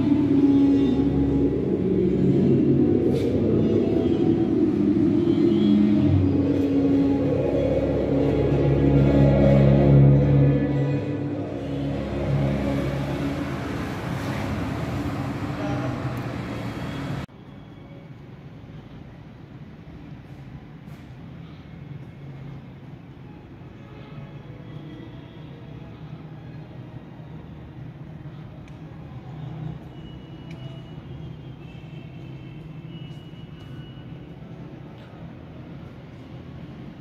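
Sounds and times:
low rumble: 0.0s - 16.4s
rushing droning noise: 0.0s - 17.3s.

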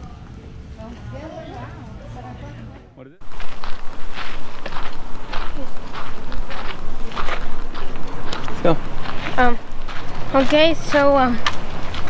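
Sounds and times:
footsteps on gravelly dirt: 3.2s - 12.0s
steady rushing noise: 3.2s - 12.0s.

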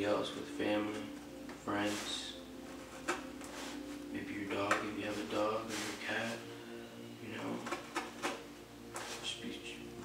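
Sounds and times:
steady background tones: 0.0s - 10.0s.

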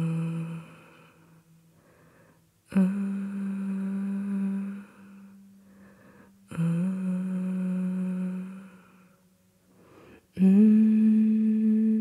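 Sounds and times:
person humming: 0.0s - 1.4s, 2.7s - 5.5s, 6.4s - 9.2s, 10.2s - 12.0s.

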